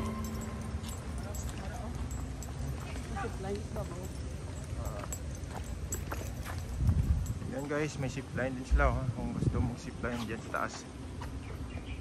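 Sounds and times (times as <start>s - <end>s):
sandal footsteps on pavement: 0.0s - 8.2s, 10.2s - 12.0s.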